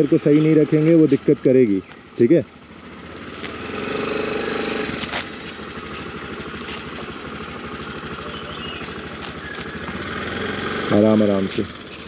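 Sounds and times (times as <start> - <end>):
scooter engine running: 0.0 - 12.0.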